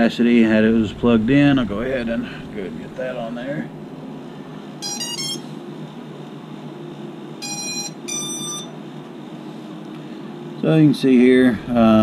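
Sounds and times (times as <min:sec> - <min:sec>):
electronic startup beeps: 0:04.8 - 0:05.5, 0:07.4 - 0:08.7.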